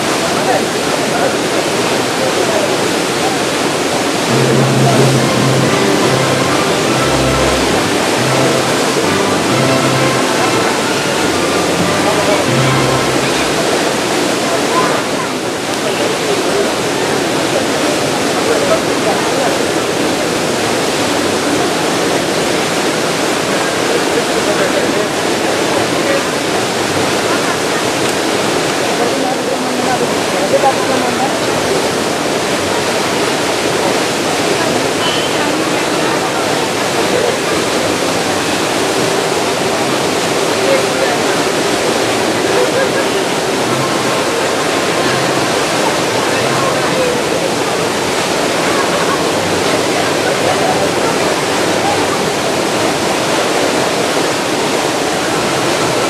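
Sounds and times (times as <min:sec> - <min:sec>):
faint voices talking: 0:00.0 - 0:56.0.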